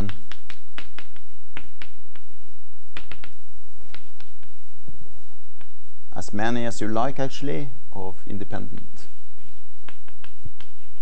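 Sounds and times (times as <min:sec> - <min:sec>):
chalk writing on blackboard: 0:00.0 - 0:06.0, 0:08.6 - 0:11.0.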